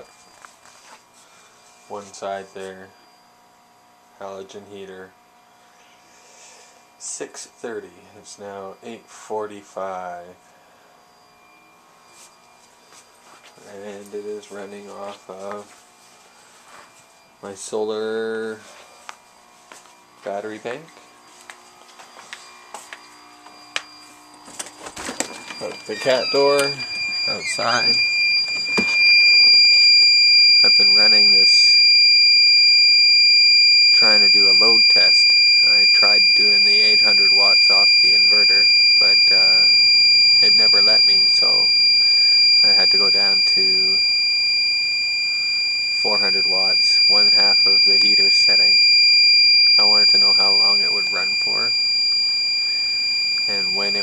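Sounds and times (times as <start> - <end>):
electrical hum with high whine: 0.0 - 54.0
steady high-pitched alarm tone: 0.0 - 54.0.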